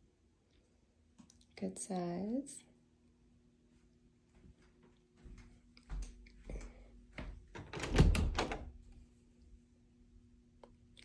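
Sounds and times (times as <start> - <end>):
closet door rattling open: 7.5 - 8.8.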